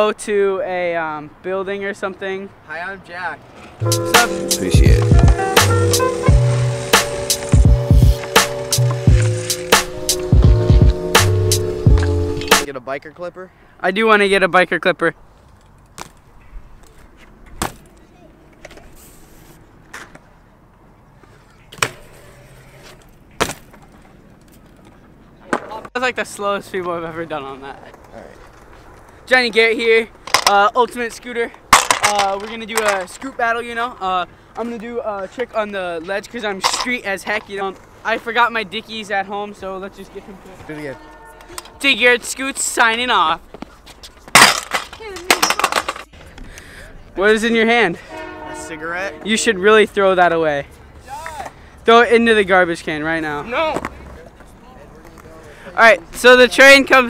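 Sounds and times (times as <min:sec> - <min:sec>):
tyres rolling on concrete: 0:02.7 - 0:11.0, 0:15.5 - 0:48.2, 0:49.1 - 0:57.0
bike wheels landing on concrete: 0:23.3 - 0:24.1
scooter clattering and rattling: 0:27.4 - 0:34.0, 0:44.2 - 0:46.4
scooter slamming onto concrete: 0:44.3 - 0:46.1.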